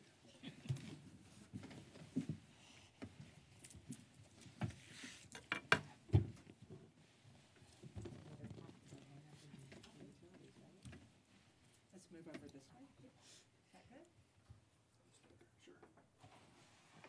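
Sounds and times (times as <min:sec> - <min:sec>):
people moving about: 0:00.2 - 0:05.2, 0:06.3 - 0:13.1.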